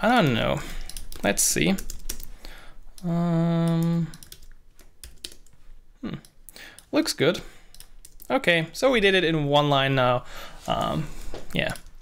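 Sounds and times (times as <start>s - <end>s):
keyboard typing clicks: 0.7s - 2.3s, 3.0s - 5.5s.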